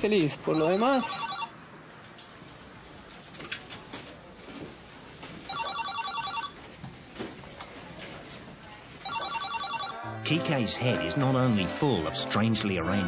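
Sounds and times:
telephone ringing: 0.5s - 1.6s, 5.5s - 6.6s, 9.0s - 10.0s.

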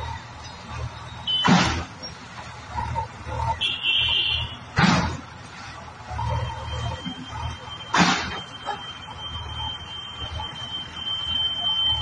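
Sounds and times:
heavy engine running: 0.0s - 12.0s
sharp bang: 1.4s - 1.9s, 4.7s - 5.2s, 7.9s - 8.4s.

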